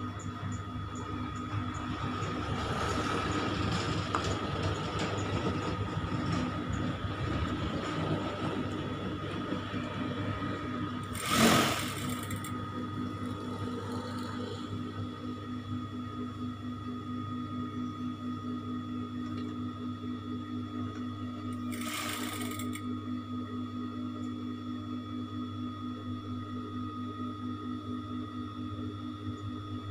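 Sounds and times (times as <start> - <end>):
sewing machine motor hum: 0.1 - 15.4, 21.3 - 22.9.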